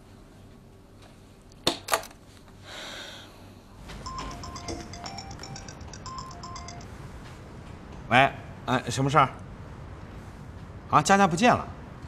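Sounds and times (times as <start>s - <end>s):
mobile phone ringtone: 4.0s - 6.9s.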